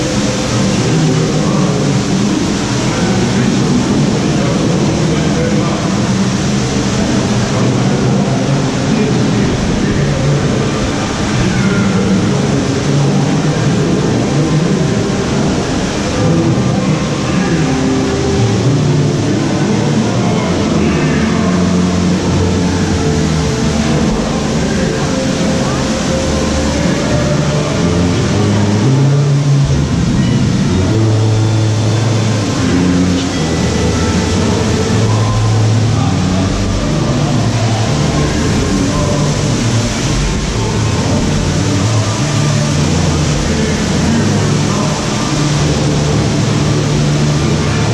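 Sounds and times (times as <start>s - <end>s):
soundtrack music with voices: 0.0s - 47.9s
steady rushing noise: 0.0s - 47.9s.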